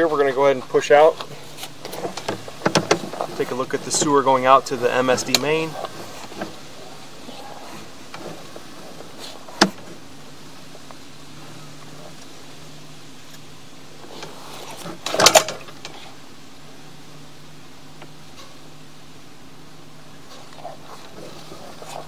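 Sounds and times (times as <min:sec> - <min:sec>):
faint steady hum: 0:00.0 - 0:22.0
knocks and scrapes: 0:01.3 - 0:04.2, 0:05.1 - 0:10.0
cable reel worked by hand: 0:13.3 - 0:16.2.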